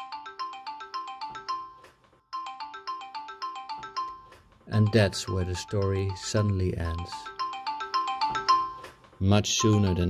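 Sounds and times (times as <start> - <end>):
phone ringtone: 0.0 - 10.0.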